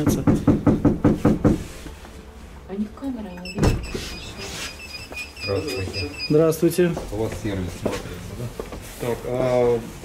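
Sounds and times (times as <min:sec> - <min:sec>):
fist knocking on door: 0:00.0 - 0:01.6.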